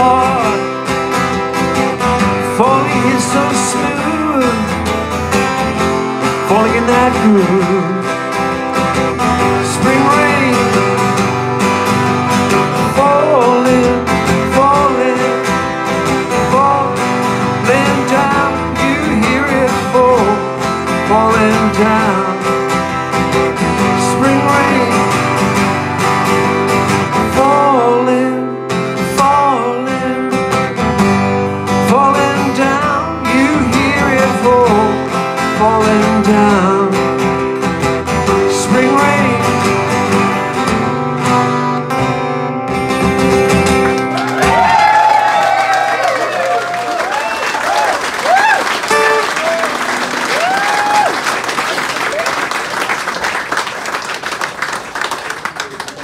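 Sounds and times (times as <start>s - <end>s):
acoustic guitar strumming: 0.0s - 44.8s, 48.8s - 50.3s.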